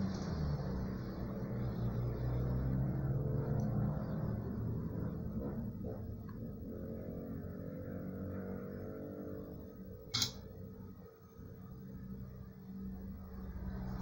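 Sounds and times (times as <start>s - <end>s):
steady low hum: 0.0s - 14.0s
sharp click: 10.1s - 10.5s.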